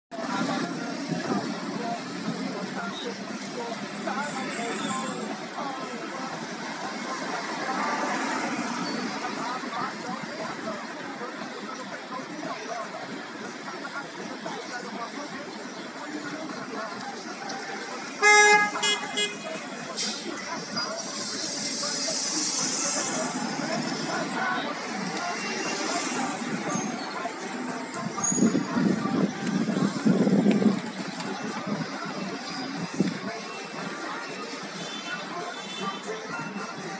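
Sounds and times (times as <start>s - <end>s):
people's voices: 0.1s - 36.9s
vehicles passing: 0.1s - 36.9s
vehicle horn honking: 18.2s - 19.5s
sudden hiss: 21.1s - 23.5s.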